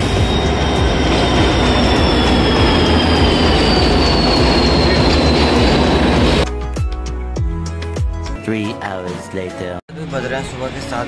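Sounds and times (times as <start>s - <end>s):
high brake squeal: 0.0s - 6.4s
train wheels rumbling on rail: 0.0s - 6.4s.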